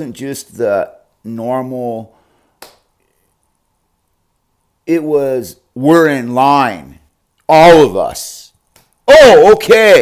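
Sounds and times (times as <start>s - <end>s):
finger snap: 2.6s - 2.9s.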